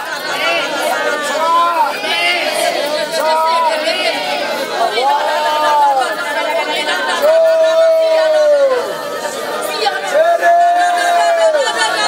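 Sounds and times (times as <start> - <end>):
congregation praying aloud: 0.0 - 12.0.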